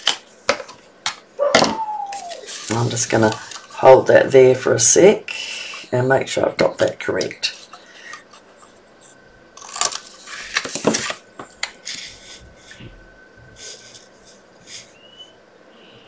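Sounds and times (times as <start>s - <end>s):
paper rustling and scraping: 2.2s - 4.0s, 9.6s - 12.8s.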